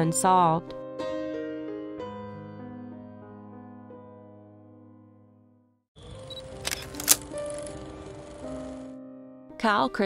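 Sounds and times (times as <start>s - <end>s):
soft piano background music: 0.0s - 10.0s
background music with hiss: 6.1s - 9.0s.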